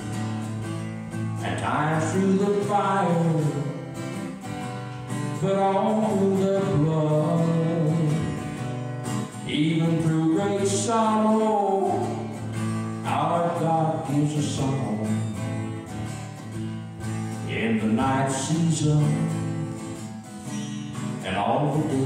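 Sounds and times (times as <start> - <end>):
acoustic guitar: 0.0 - 22.0
man singing: 1.3 - 4.2, 5.1 - 8.7, 9.3 - 15.6, 17.4 - 20.0, 21.1 - 22.0.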